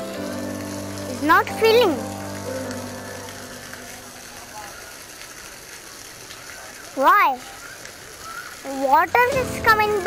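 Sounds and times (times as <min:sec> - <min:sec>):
fountain splashing onto pebbles: 0:00.0 - 0:10.0.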